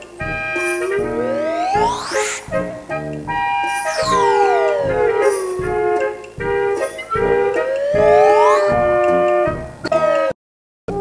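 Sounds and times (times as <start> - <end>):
falling sliding tone: 0.0 - 6.2
playful cartoon music: 0.0 - 11.0.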